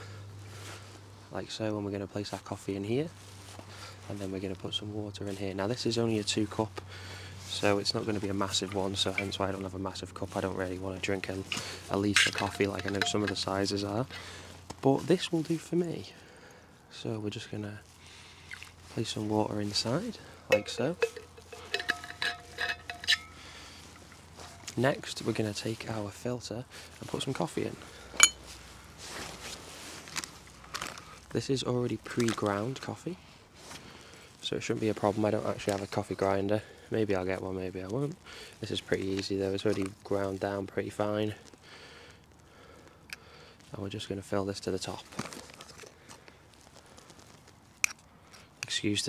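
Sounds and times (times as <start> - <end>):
spoon rustling in ground coffee: 7.5 - 14.1, 18.5 - 26.0
metal coffee gear clinking: 11.5 - 13.7, 20.5 - 24.8, 28.2 - 28.4
metal spoon tapping metal: 12.2 - 13.5, 20.5 - 23.4.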